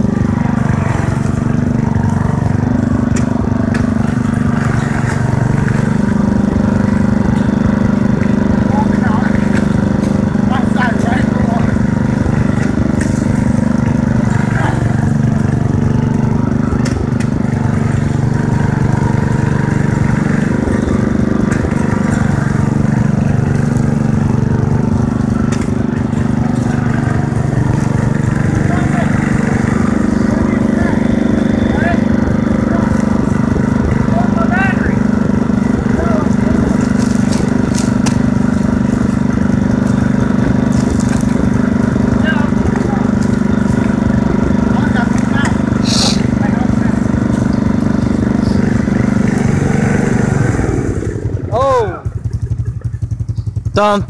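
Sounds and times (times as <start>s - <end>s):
lawn mower engine running: 0.0s - 54.0s.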